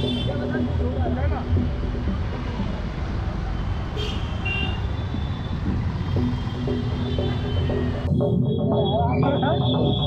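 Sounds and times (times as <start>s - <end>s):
rumble of passing vehicles: 0.0s - 10.0s.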